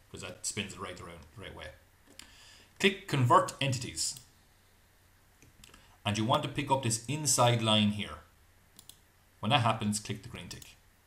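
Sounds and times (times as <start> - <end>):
computer mouse clicks: 8.8 - 9.0.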